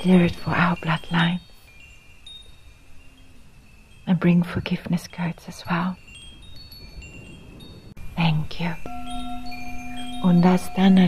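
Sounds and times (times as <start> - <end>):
soft high chimes: 0.0 - 11.0.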